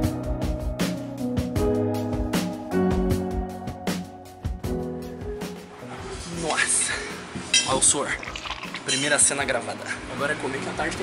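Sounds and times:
dishes and cutlery clinking: 0:07.4 - 0:09.4.

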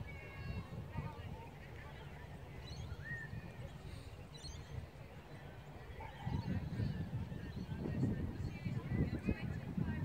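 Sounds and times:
wind buffeting microphone: 0:00.0 - 0:10.0
faint bird chirps: 0:02.6 - 0:04.9.

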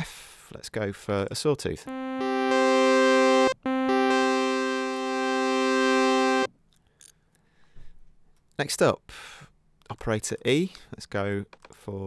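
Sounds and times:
synth chord bright and buzzy: 0:01.9 - 0:06.5.

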